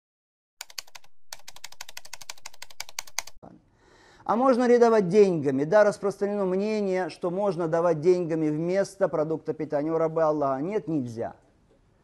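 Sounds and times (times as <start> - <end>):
computer keyboard typing: 0.6 - 3.4.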